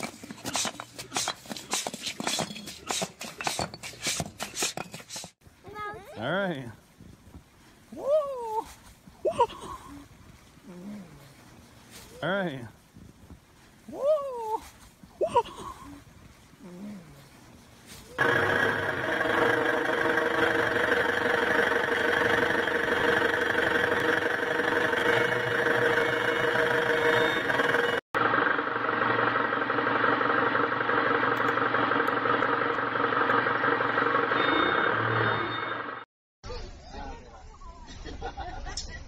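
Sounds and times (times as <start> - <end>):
large vehicle engine running: 18.2 - 36.0.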